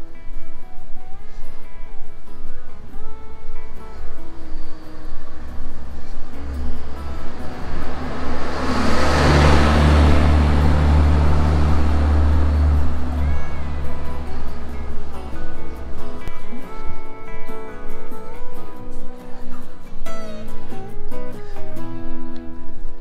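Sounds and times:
guitar music: 0:00.0 - 0:23.0
vehicle engine rumble passing: 0:02.4 - 0:23.0.

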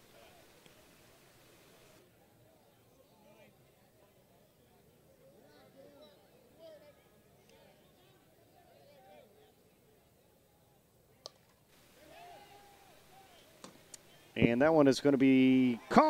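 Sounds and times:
faint voices of spectators: 0:00.0 - 0:16.0.

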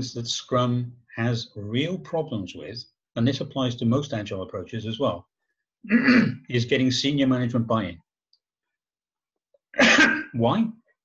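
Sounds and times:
man coughing: 0:05.9 - 0:06.4, 0:09.8 - 0:10.4.

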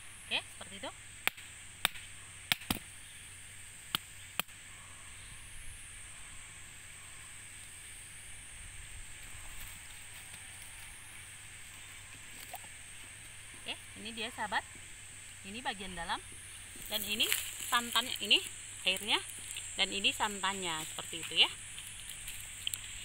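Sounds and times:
steady high hiss: 0:00.0 - 0:23.0
machete knocking on coconut: 0:01.2 - 0:02.9.

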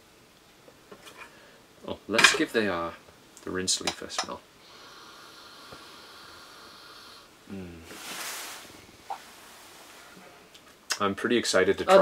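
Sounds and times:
person breathing in through nose: 0:04.6 - 0:08.6.

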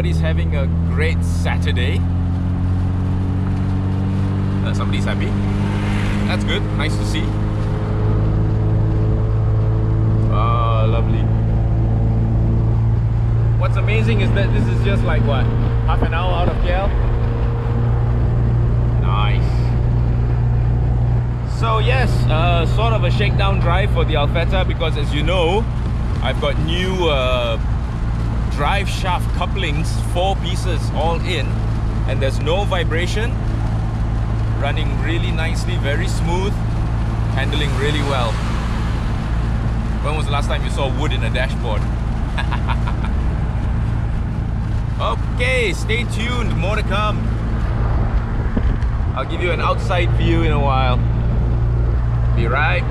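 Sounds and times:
car engine cruising: 0:00.0 - 0:52.9
road and tyre noise: 0:00.0 - 0:52.9.

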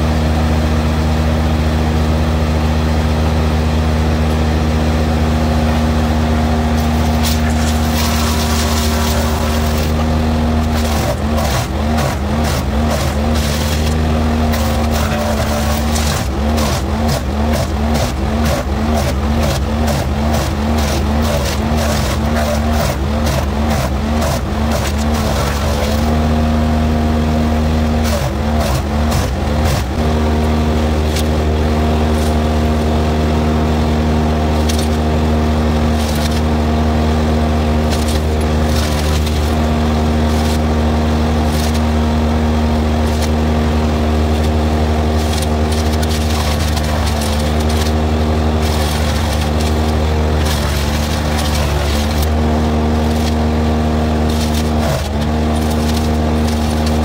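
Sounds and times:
skid steer engine: 0:00.0 - 0:57.0
wood chipper engine running: 0:00.0 - 0:57.0
cracks and knocks of wood: 0:06.8 - 0:26.2.

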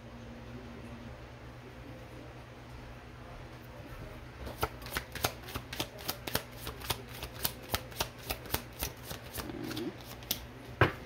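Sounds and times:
cards being shuffled: 0:04.5 - 0:10.5.

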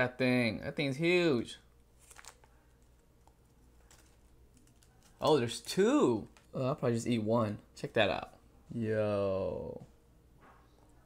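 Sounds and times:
plastic bag crinkling: 0:01.8 - 0:06.6.

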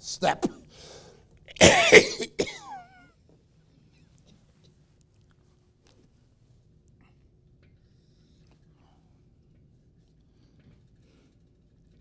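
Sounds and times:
man coughing hard: 0:01.6 - 0:03.0.

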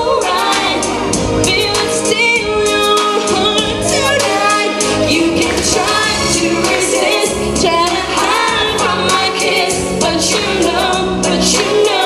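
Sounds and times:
backing music: 0:00.0 - 0:12.0
woman singing into microphone: 0:00.0 - 0:12.0.

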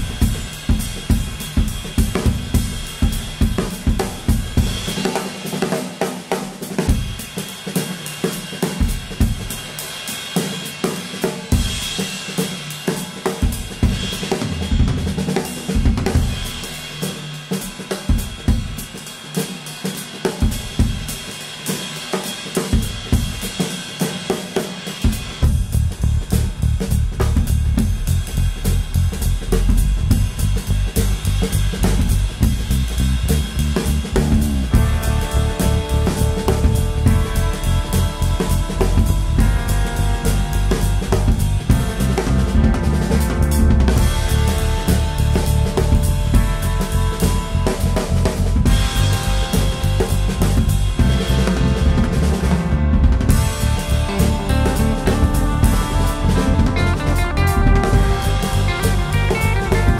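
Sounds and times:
drum kit groove: 0:00.0 - 0:59.9
low rumble: 0:25.5 - 0:59.9.

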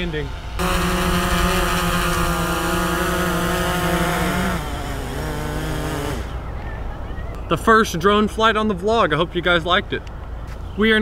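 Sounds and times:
drone propellers buzzing: 0:00.0 - 0:06.6.

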